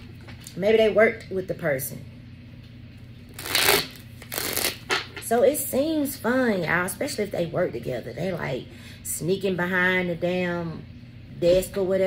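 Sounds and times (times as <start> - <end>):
cards shuffling: 3.4 - 4.9.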